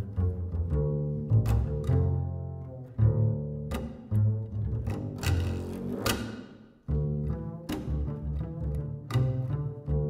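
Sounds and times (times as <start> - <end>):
double bass plucked notes: 0.0 - 10.0.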